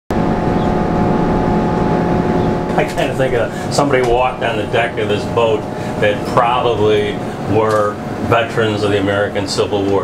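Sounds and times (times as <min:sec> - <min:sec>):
boat engine running: 0:00.1 - 0:10.0.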